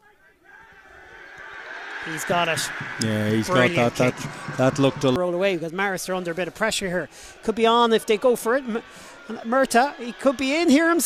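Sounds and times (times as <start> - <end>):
stadium crowd voices rising: 0.0 - 11.0.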